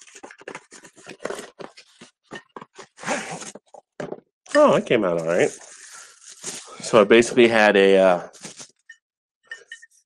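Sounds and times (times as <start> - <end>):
cardboard crunches and scrapes: 0.0 - 3.7, 5.1 - 7.0, 8.3 - 8.8
cardboard rustle: 8.4 - 8.7.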